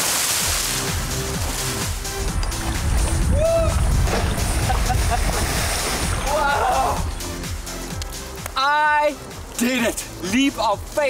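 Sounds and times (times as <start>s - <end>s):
water splashing around legs: 0.0s - 3.2s, 3.8s - 7.1s
background music: 0.0s - 11.0s
man shouting: 3.3s - 3.8s, 6.2s - 7.1s.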